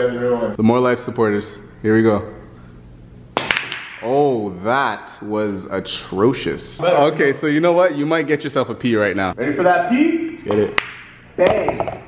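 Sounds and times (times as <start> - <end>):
pool balls clicking: 3.4 - 4.1.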